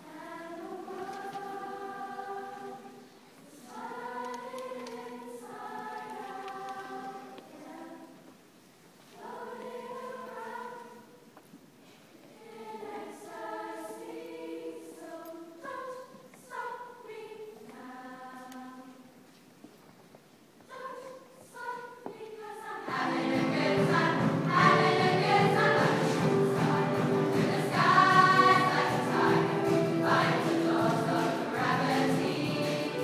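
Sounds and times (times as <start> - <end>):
choir singing in harmony: 0.0 - 8.3, 9.1 - 11.3, 12.2 - 19.1, 20.7 - 33.0.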